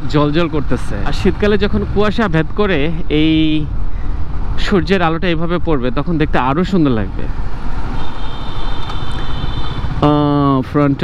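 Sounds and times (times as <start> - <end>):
motorcycle engine running: 7.4 - 10.8.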